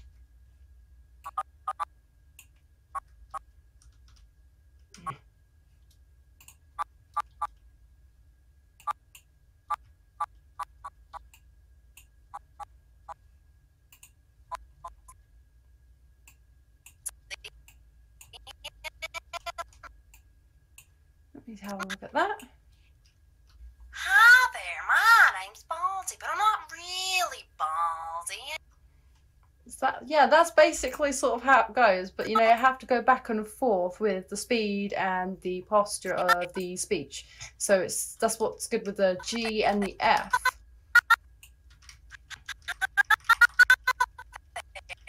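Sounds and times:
computer keyboard keys clicking: 3.8 - 4.3.

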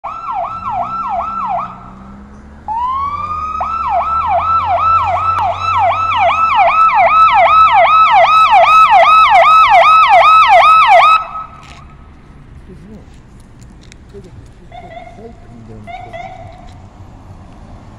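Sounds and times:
police siren yelping: 0.0 - 1.9, 2.7 - 11.8, 14.6 - 16.8.

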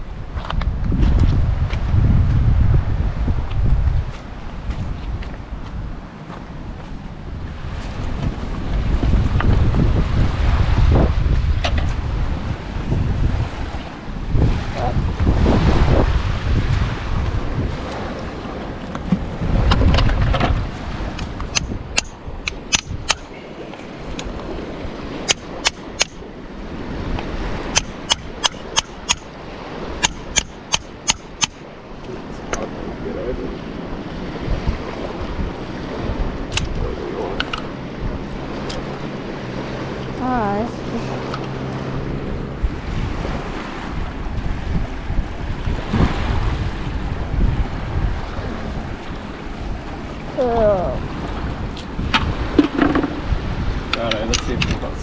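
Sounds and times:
wind buffeting microphone: 0.0 - 55.0
stones and shells clicking: 21.6 - 23.3.

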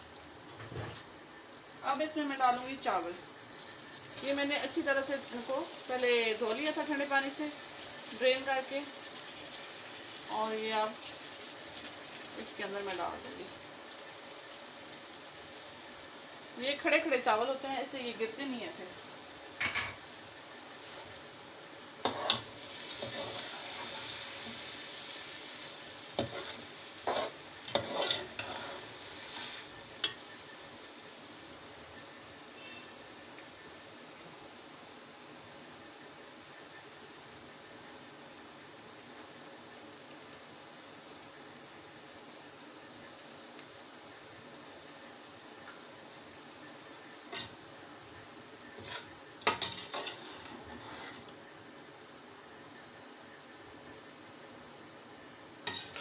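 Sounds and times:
metal spoon scraping a pot: 22.0 - 23.5, 26.2 - 30.2, 48.8 - 51.3, 55.7 - 56.0.

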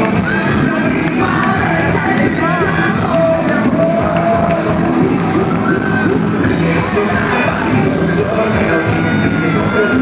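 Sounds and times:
crowd shouting and whooping: 0.0 - 10.0
live pop band with singing: 0.0 - 10.0.

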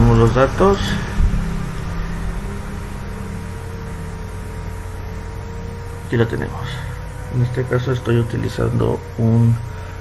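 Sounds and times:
low drone of sustained tones: 0.0 - 10.0.

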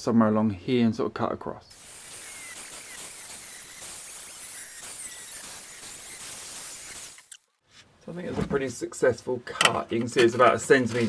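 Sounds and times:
angle grinder cutting steel: 1.7 - 7.5.

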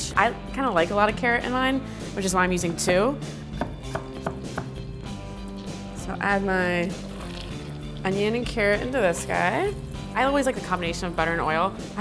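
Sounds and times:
background music with held notes: 0.0 - 12.0
knife chopping on wooden board: 3.5 - 4.8.

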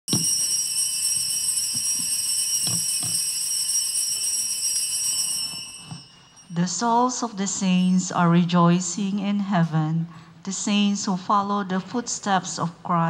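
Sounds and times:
small altar bells ringing: 0.1 - 8.8.

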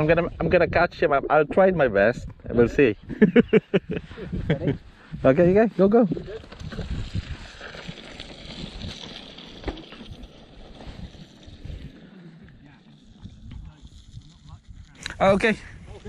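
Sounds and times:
wind buffeting microphone: 0.0 - 9.1, 10.0 - 16.0.

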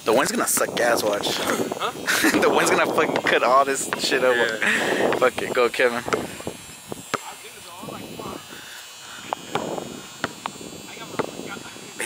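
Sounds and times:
faint hiss: 0.0 - 12.0.

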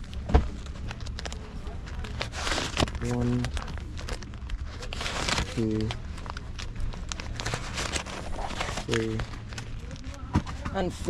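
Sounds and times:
banknotes rustling: 0.0 - 11.0.

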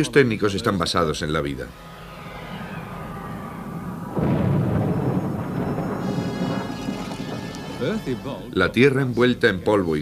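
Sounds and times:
rolling thunder rumble: 1.8 - 8.4
rain hiss: 4.1 - 8.5.

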